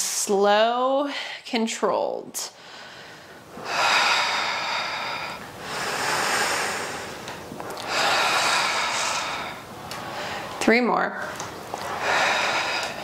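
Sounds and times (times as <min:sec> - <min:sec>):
woman breathing slowly: 0:02.5 - 0:10.6, 0:11.7 - 0:13.0.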